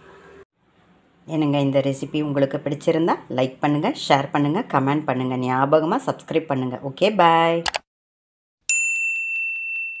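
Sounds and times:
high bell-like ding: 8.7s - 10.0s.

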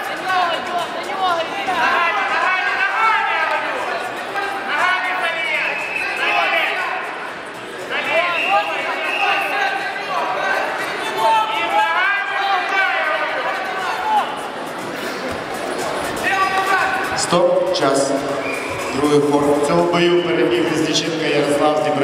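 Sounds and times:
people calling out and talking: 0.0s - 22.0s.

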